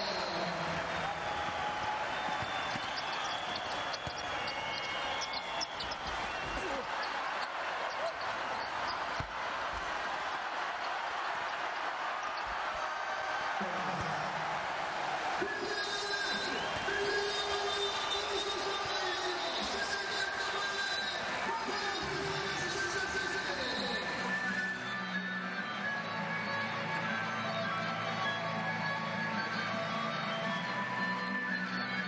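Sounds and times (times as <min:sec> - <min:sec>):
arena crowd noise: 0:00.0 - 0:32.0
basketball bouncing on court: 0:01.2 - 0:12.8.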